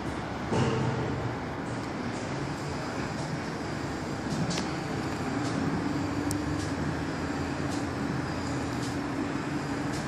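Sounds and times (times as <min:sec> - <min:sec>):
distant road traffic rumble: 0:00.0 - 0:10.0
low engine hum: 0:00.0 - 0:10.0.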